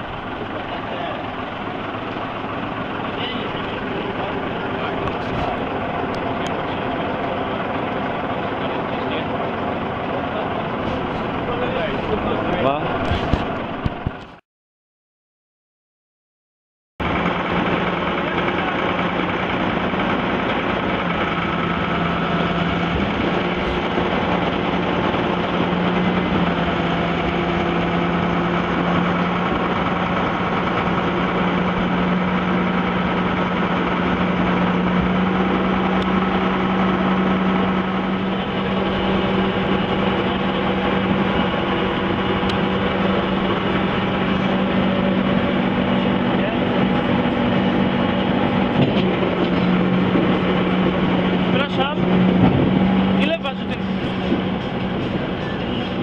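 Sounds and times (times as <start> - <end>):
boat engine humming: 0.0 - 14.4, 17.0 - 56.0.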